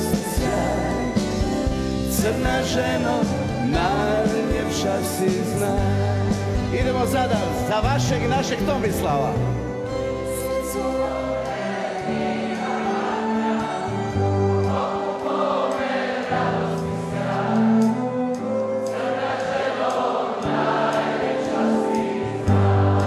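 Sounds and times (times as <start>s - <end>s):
crowd singing in chorus: 0.0s - 6.7s, 9.8s - 23.0s
band and orchestra playing: 0.0s - 15.0s, 16.8s - 19.2s.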